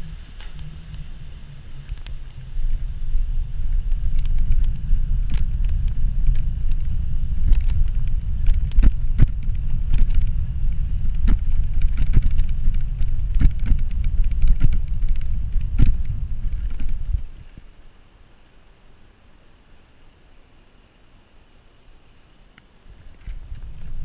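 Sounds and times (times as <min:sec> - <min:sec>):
bicycle rattling on cobblestones: 0:00.0 - 0:17.6, 0:23.0 - 0:24.0
wind rushing over microphone: 0:00.0 - 0:17.8, 0:22.8 - 0:24.0.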